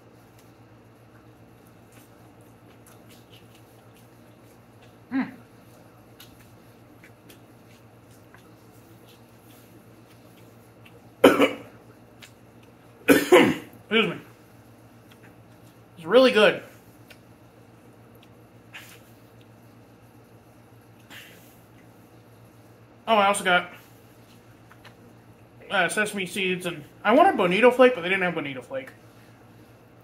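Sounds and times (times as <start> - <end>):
faint eating noise: 0.0 - 23.0, 23.7 - 25.8
man clearing his throat: 11.2 - 11.7, 13.1 - 14.2
man coughing: 11.2 - 11.7, 13.1 - 14.2.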